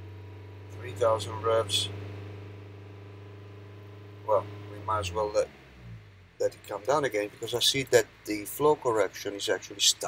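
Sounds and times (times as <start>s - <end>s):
diesel engine humming steadily: 0.0s - 10.0s.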